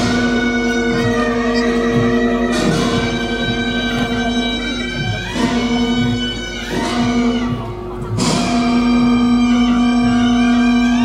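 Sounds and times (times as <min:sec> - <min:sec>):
drum beats: 0:00.0 - 0:11.0
reedy wind instruments: 0:00.0 - 0:11.0.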